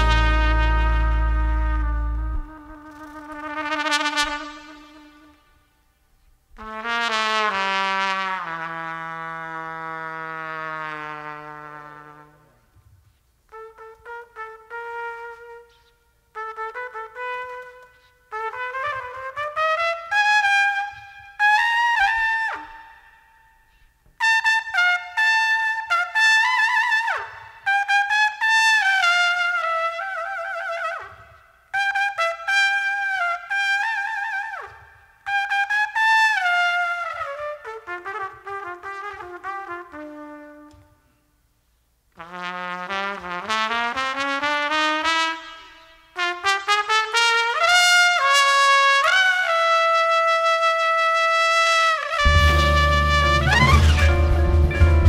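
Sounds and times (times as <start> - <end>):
solo jazz trumpet: 0.0 - 41.5, 42.1 - 55.0.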